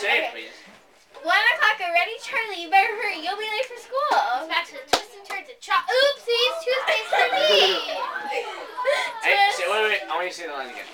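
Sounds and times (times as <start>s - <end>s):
children talking: 1.2s - 10.9s.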